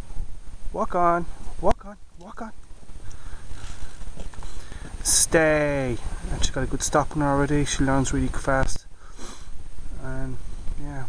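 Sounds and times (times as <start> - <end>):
microphone handling noise: 2.2 - 5.1
footsteps on gravel: 2.6 - 5.1.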